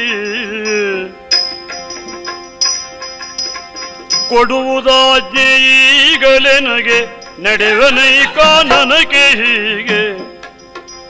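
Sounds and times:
man singing long notes: 0.0 - 1.3, 4.3 - 10.4.

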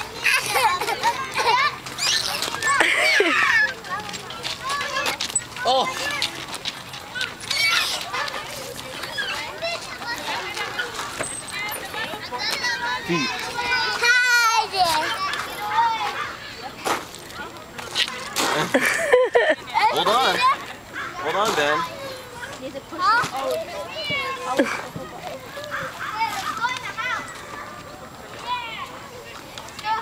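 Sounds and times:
toddler squealing: 0.2 - 3.6, 7.5 - 8.0.

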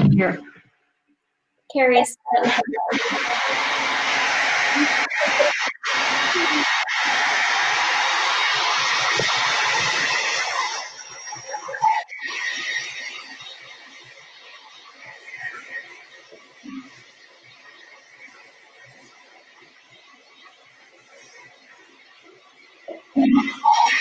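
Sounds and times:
blow dryer running: 2.9 - 10.8.

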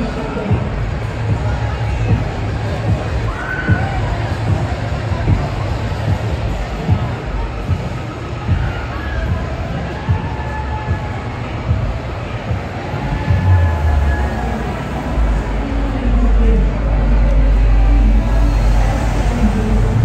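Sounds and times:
crowd voices: 0.0 - 20.0
music: 0.0 - 20.0.

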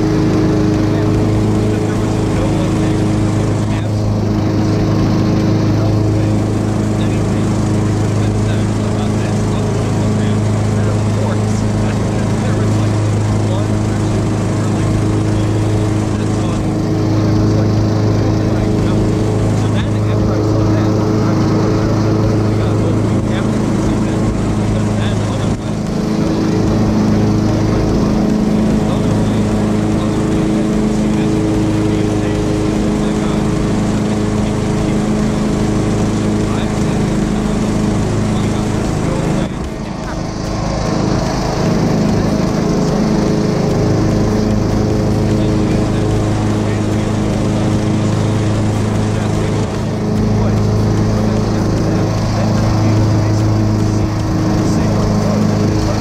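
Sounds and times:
lawn mower engine running: 0.0 - 56.0.

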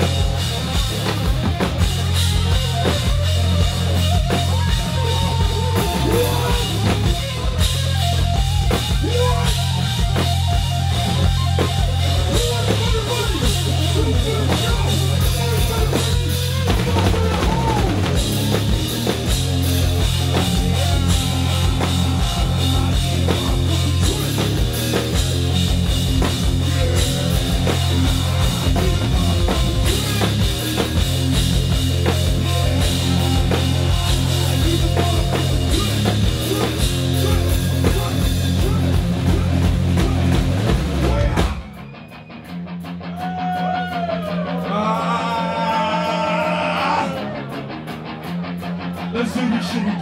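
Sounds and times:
rock band playing: 0.0 - 50.0.

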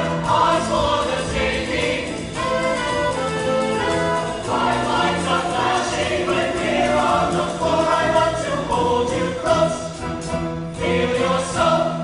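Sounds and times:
instrumental backing music: 0.0 - 12.0
mixed choir singing: 0.0 - 12.0.

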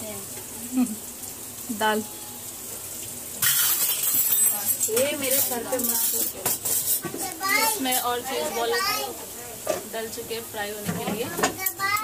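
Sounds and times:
hot oil sizzling: 0.0 - 12.0
voices: 4.3 - 12.0.

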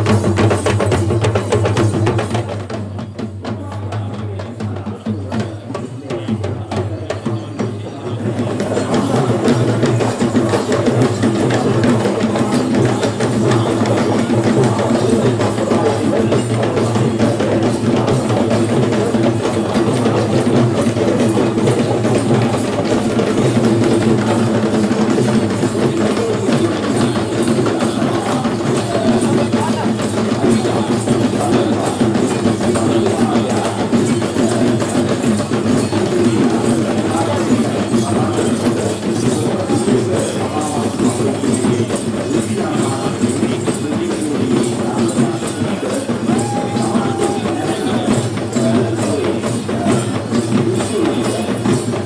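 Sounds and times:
group of drummers drumming: 0.0 - 52.0
jingling accents: 0.0 - 52.0.

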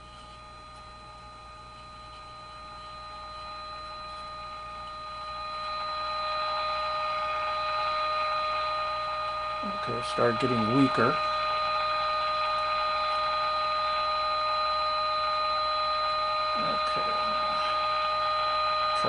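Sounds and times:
radio modulation tone: 0.0 - 19.0
radio hiss: 6.4 - 14.2, 16.5 - 18.0.

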